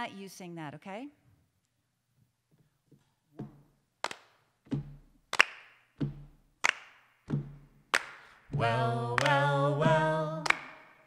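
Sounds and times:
hand claps: 4.0s - 11.0s
low thumps: 4.7s - 5.2s, 6.0s - 6.6s, 7.3s - 10.2s.

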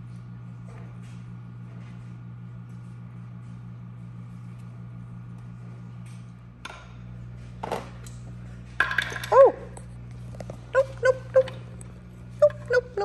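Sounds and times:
low steady hum: 0.0s - 13.0s.

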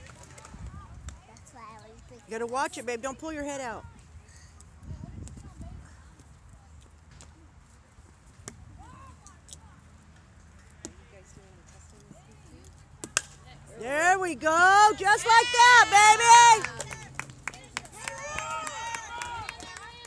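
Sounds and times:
baseball bat cracking ball: 13.0s - 13.4s.

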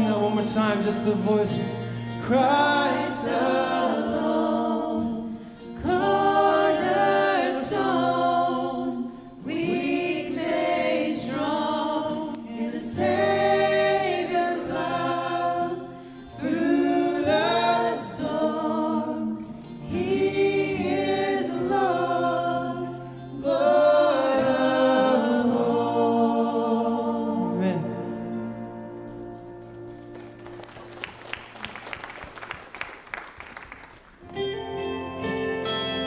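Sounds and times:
man singing lead: 0.0s - 3.5s, 19.9s - 28.8s
acoustic guitar: 0.0s - 31.7s, 34.0s - 36.0s
choir singing: 2.2s - 29.3s.

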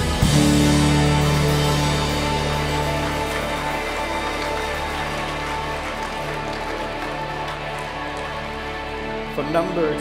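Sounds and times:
long-held guitar chords: 0.0s - 9.8s
worship band playing: 0.0s - 10.0s.

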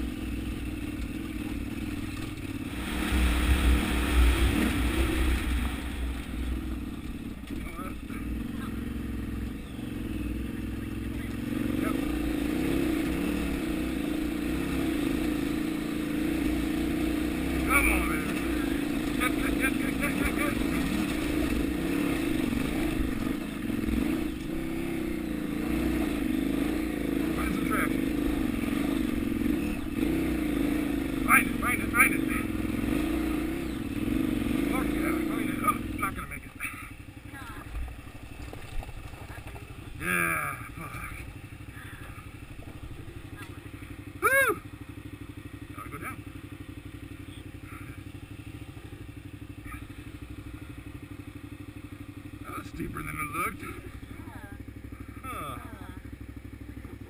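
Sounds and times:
motorcycle engine pulling hard: 0.0s - 57.0s.

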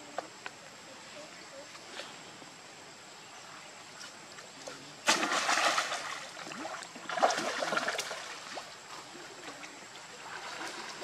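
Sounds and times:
monkeys splashing in water: 5.0s - 11.0s.

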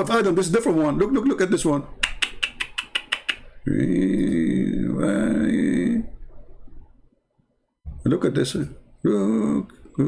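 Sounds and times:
quick clicks: 2.0s - 3.4s
low rough vocal sound: 3.6s - 6.3s, 9.0s - 10.0s.

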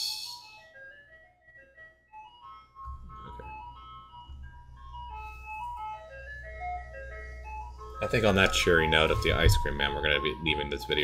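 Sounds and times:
ice cream truck jingle: 0.1s - 11.0s.

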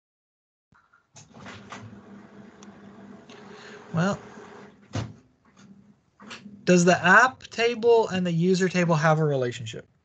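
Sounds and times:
person speaking: 3.8s - 4.3s, 6.6s - 9.9s.

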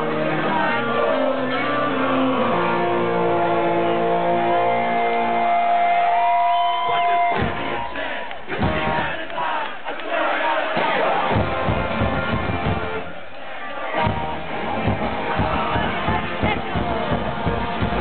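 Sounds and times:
crowd shouting and cheering: 0.0s - 18.0s
celtic punk band playing live: 8.5s - 9.2s, 10.8s - 13.1s, 14.0s - 18.0s.

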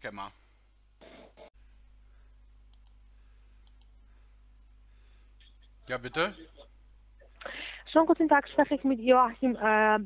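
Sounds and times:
steady low hum: 0.0s - 10.0s
faint clicks: 2.7s - 3.0s, 3.6s - 4.0s.

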